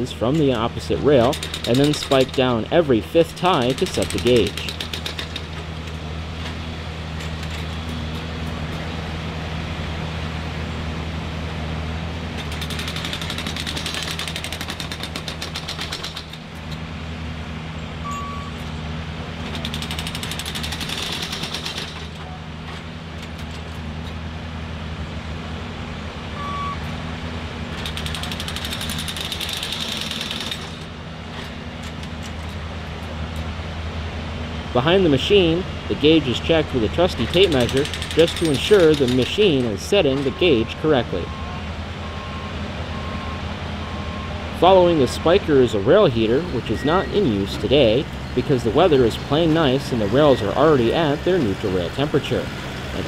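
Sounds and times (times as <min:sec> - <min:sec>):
rapid hammering of spikes: 0:01.2 - 0:02.6, 0:03.4 - 0:05.6, 0:12.4 - 0:16.5, 0:19.5 - 0:22.2, 0:27.8 - 0:30.9, 0:37.2 - 0:39.7
short high beeps: 0:18.0 - 0:18.6, 0:26.4 - 0:26.8
machine engine running: 0:34.9 - 0:41.4.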